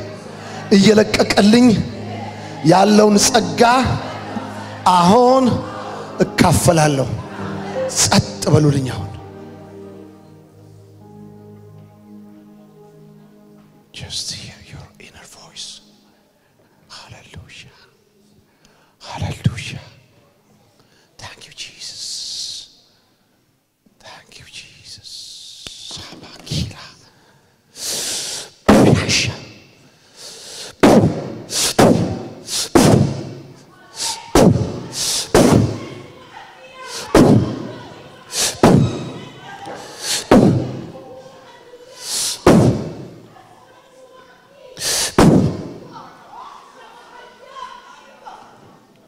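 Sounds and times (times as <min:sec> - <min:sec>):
man whispering: 0:13.9 - 0:15.9, 0:16.9 - 0:17.9, 0:21.2 - 0:22.7, 0:24.0 - 0:27.2
breath hiss on microphone: 0:27.0 - 0:28.7, 0:29.8 - 0:30.8, 0:31.4 - 0:31.8, 0:32.4 - 0:32.8, 0:42.0 - 0:42.5, 0:44.8 - 0:45.2.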